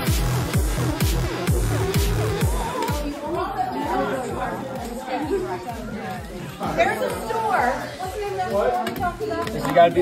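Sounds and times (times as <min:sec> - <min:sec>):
teenagers chattering: 0:00.0 - 0:10.0.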